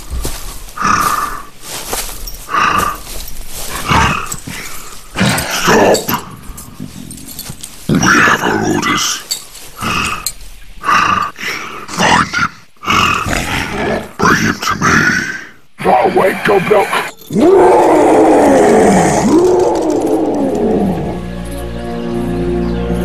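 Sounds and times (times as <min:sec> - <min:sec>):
deep creature-like voices speaking: 0:03.8 - 0:06.4, 0:07.9 - 0:21.2.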